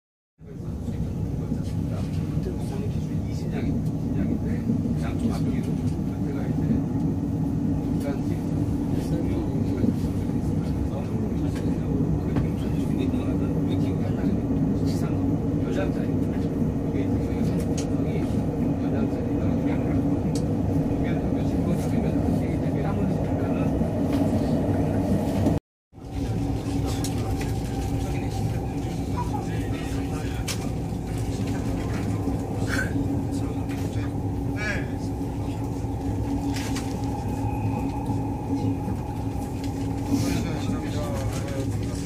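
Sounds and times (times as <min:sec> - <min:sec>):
train interior low rumble: 0:00.4 - 0:42.0
train motors humming: 0:00.5 - 0:42.0.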